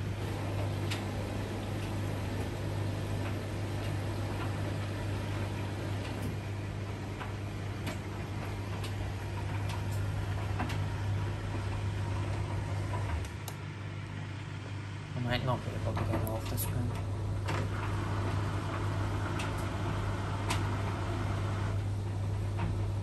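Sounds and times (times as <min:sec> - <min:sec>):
machine motor hum: 0:00.0 - 0:23.0.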